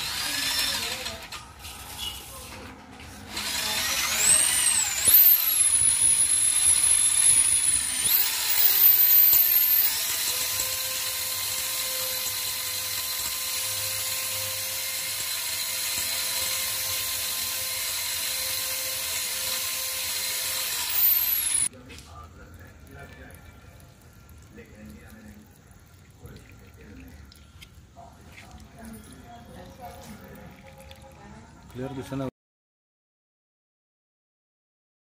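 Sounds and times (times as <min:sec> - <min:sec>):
electric drill motor whine: 0:00.0 - 0:01.4, 0:03.3 - 0:21.7.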